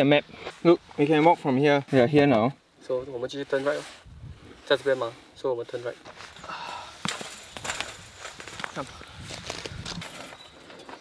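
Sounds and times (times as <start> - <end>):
footsteps on stony ground: 5.8 - 11.0.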